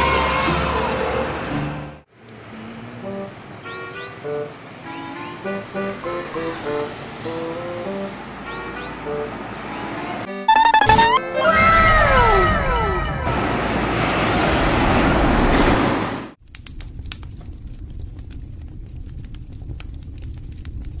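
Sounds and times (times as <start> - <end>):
heavy truck passing: 0.0 - 10.3, 13.2 - 16.4.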